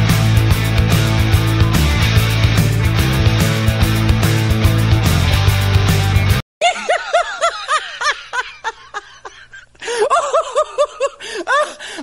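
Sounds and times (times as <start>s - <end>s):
person laughing: 6.6s - 12.0s.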